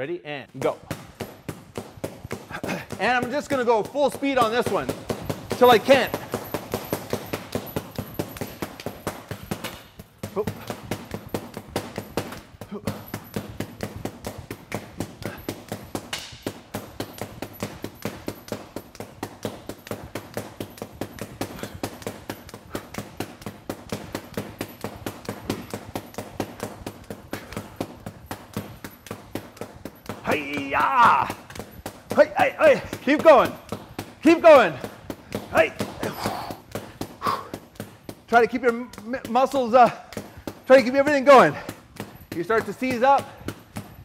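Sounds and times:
stick slapping leather heavy bag: 0:00.6 - 0:44.0.

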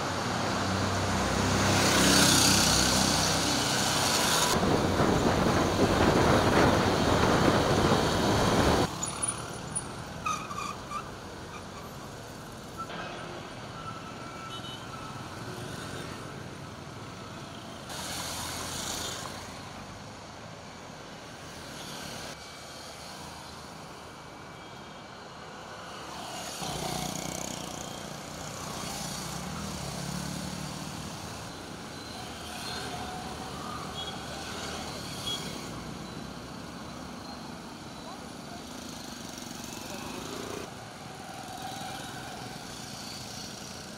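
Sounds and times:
engine and wind rush: 0:00.0 - 0:08.9
vehicles passing on street: 0:00.0 - 0:43.9.

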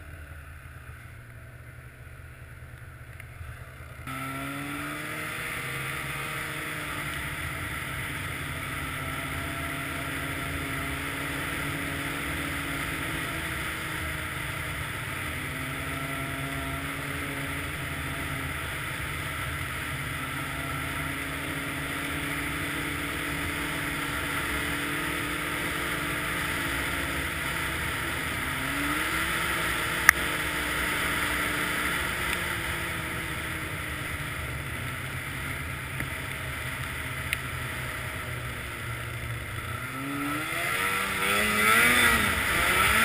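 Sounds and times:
snowmobile engine running: 0:00.0 - 0:43.0.

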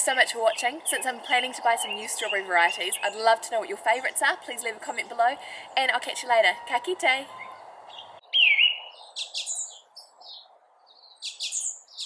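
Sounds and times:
songbirds chirping: 0:00.0 - 0:12.0.

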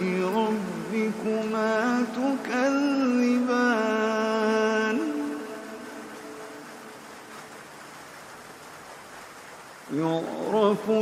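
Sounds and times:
person reciting in song: 0:00.0 - 0:06.7, 0:09.9 - 0:11.0
faint hiss: 0:00.0 - 0:11.0.

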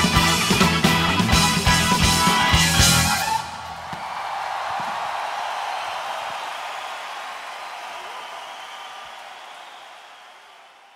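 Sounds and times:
concert crowd applause: 0:00.0 - 0:10.9.

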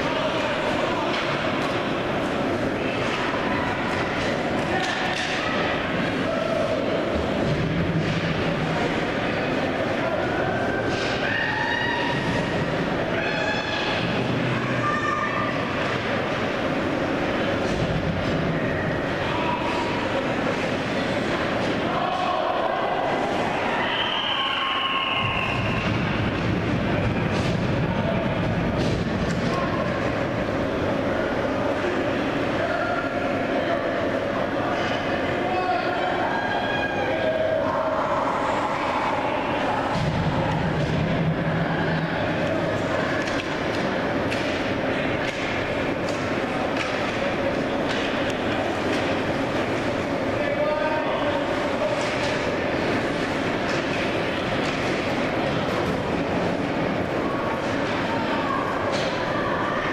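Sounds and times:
hockey sticks and puck clacking: 0:43.0 - 0:49.9, 0:53.2 - 0:56.0.

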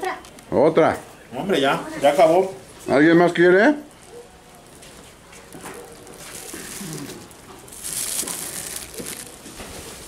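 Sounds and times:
plastic bag crinkling: 0:04.0 - 0:10.0.

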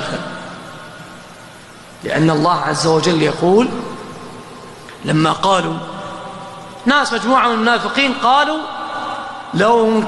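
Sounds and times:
man speaking amplified: 0:00.0 - 0:00.6, 0:02.0 - 0:04.3, 0:04.9 - 0:10.0
sound system hiss and hum: 0:00.0 - 0:10.0.

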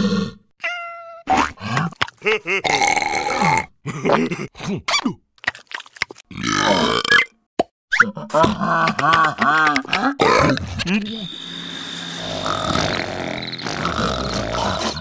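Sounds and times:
cartoon character grunts and cries: 0:00.0 - 0:02.0.

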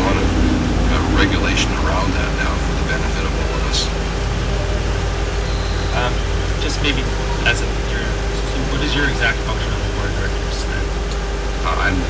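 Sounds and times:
constant mid-pitched tone: 0:00.0 - 0:12.0
steady low hum: 0:00.0 - 0:12.0.

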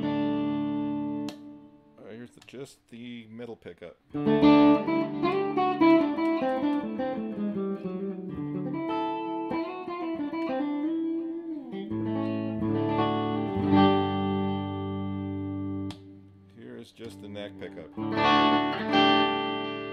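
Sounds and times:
clean electric guitar chords: 0:00.0 - 0:01.9, 0:04.1 - 0:16.5, 0:17.1 - 0:19.9.

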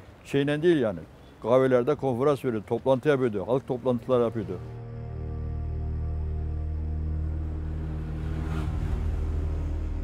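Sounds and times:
dark droning music: 0:04.5 - 0:10.0
whoosh swell: 0:04.7 - 0:10.0.

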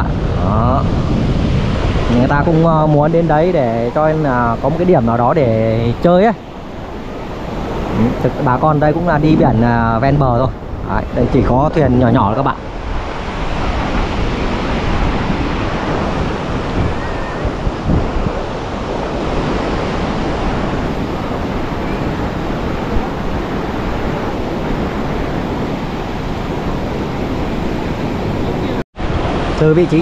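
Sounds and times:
surf breaking on beach: 0:00.0 - 0:30.0
wind buffeting microphone: 0:00.0 - 0:30.0.

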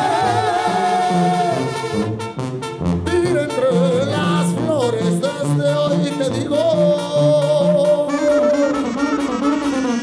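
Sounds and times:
brass band melody: 0:00.0 - 0:10.0
tuba bass line: 0:00.0 - 0:10.0.

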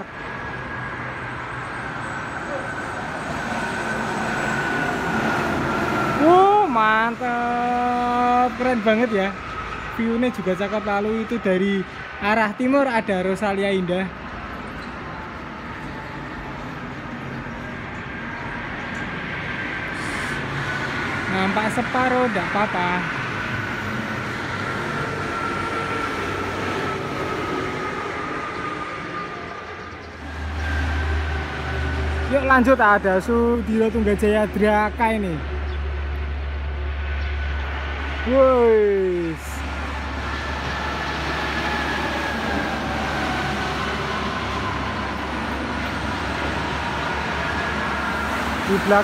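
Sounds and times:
heavy truck deep drone: 0:00.0 - 0:12.2, 0:14.2 - 0:49.0
coach engine whine: 0:00.0 - 0:12.3, 0:14.1 - 0:49.0
highway traffic passing: 0:00.0 - 0:49.0
road noise: 0:00.0 - 0:49.0.

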